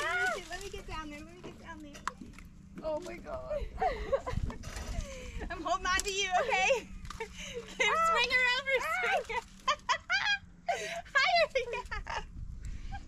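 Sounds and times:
women exclaiming and laughing: 0:00.0 - 0:01.2, 0:02.8 - 0:13.0.

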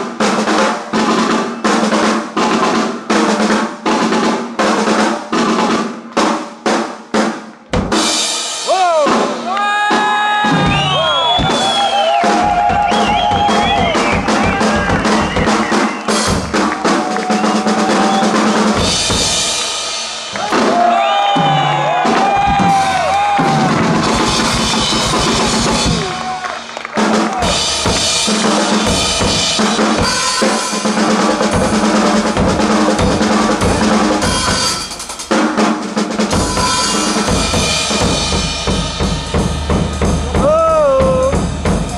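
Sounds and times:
drum duet: 0:00.0 - 0:41.9.

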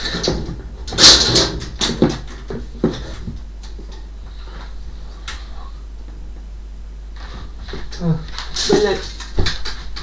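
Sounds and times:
items scraping on wooden wardrobe: 0:00.0 - 0:03.4.

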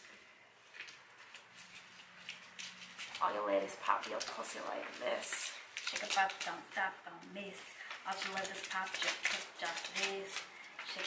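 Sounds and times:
paper rustling and scratching: 0:00.7 - 0:06.7, 0:08.1 - 0:11.0.

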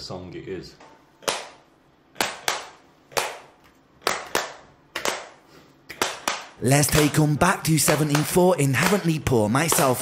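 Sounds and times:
sharp hand claps: 0:01.2 - 0:01.6, 0:02.2 - 0:10.0.

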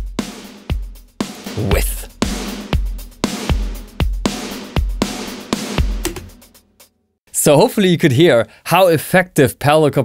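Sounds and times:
compressed drum kit groove: 0:00.0 - 0:06.8.

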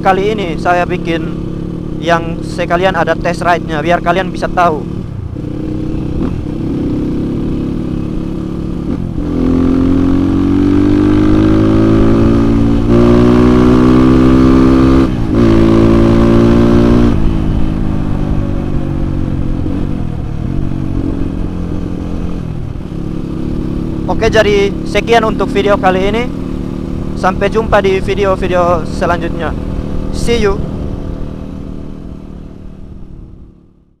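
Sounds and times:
motorcycle engine accelerating: 0:00.0 - 0:34.0.

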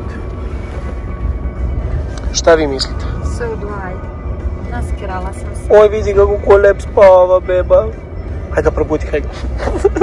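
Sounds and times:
car engine and tyre noise: 0:00.0 - 0:10.0.

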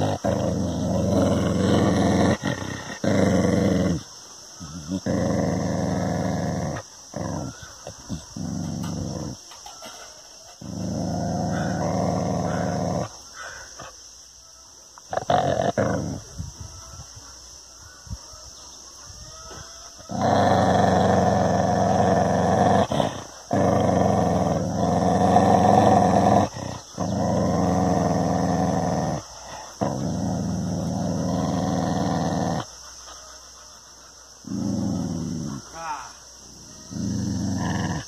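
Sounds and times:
dog growling: 0:00.0 - 0:09.6, 0:10.4 - 0:14.0, 0:15.1 - 0:16.5, 0:19.9 - 0:38.0.

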